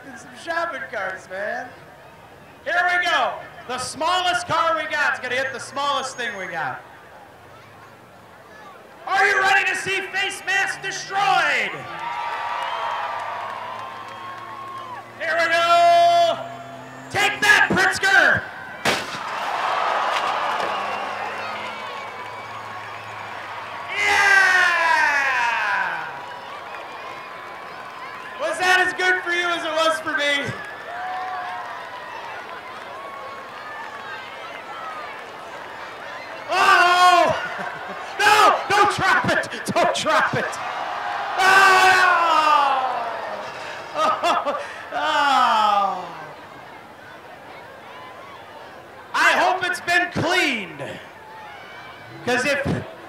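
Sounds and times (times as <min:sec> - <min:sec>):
whoops falling in pitch: 0:11.9 - 0:15.2, 0:19.5 - 0:28.4, 0:30.4 - 0:32.3
car crashing into shopping carts: 0:18.8 - 0:21.2
person laughing hard: 0:43.6 - 0:45.3.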